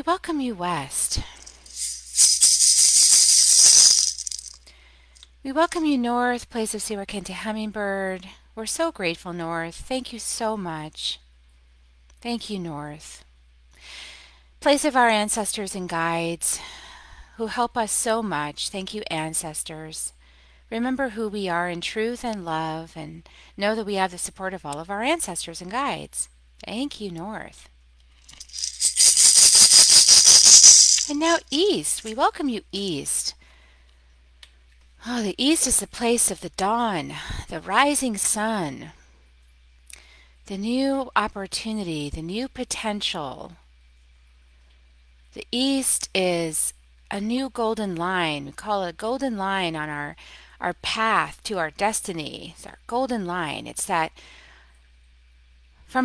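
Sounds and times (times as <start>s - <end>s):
hand rattle shaking: 1.2s - 4.6s, 28.2s - 32.2s.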